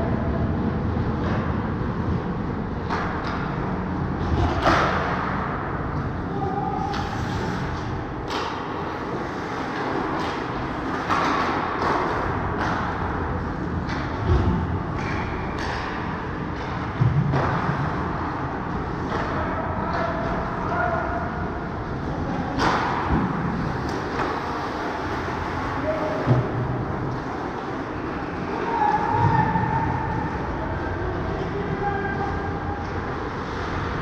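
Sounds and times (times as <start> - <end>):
skates scraping on ice: 7.0 - 12.8
hockey sticks and puck knocking: 8.2 - 13.2, 22.5 - 25.6.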